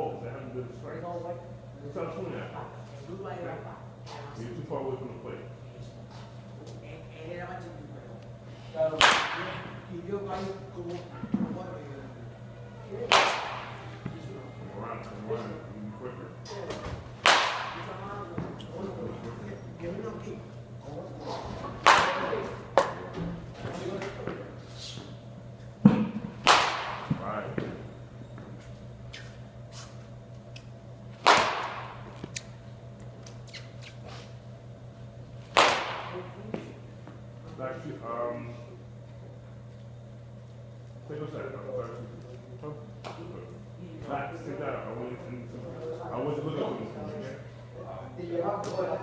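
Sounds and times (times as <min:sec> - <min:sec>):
baseball bat hitting balls: 0:08.9 - 0:09.8, 0:13.0 - 0:13.9, 0:17.2 - 0:18.5, 0:21.8 - 0:23.0, 0:25.8 - 0:27.8, 0:31.1 - 0:32.4, 0:35.4 - 0:36.4.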